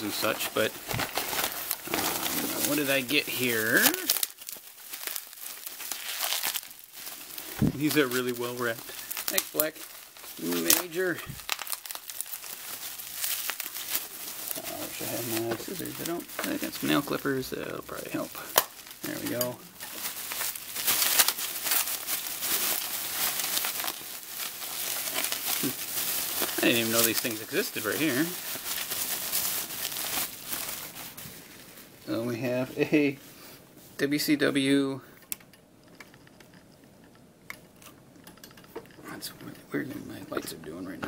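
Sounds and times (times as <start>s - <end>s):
bubble wrap crinkling: 0.0s - 34.8s.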